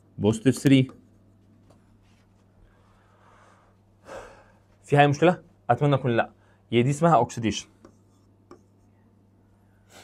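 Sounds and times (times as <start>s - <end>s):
steady low hum: 0.0s - 10.0s
man speaking: 4.8s - 7.8s.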